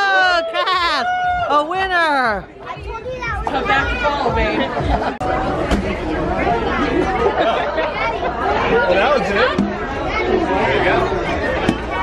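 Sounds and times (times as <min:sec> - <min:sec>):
children chattering: 0:02.5 - 0:12.0.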